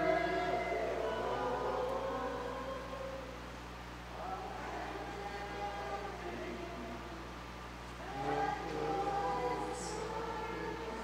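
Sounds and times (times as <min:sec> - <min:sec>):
congregation singing a hymn: 0:00.0 - 0:11.0
steady low hum: 0:00.0 - 0:11.0.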